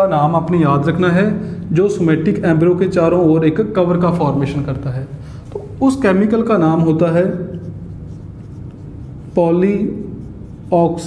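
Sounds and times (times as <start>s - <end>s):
steady low hum: 0.0s - 11.0s
marker writing on whiteboard: 5.5s - 11.0s.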